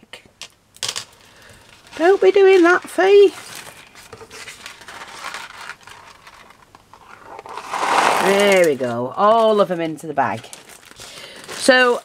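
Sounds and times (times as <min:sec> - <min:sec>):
paper scraping: 0:01.7 - 0:09.5
beads rolling on paper plate: 0:01.8 - 0:03.4, 0:06.1 - 0:09.6.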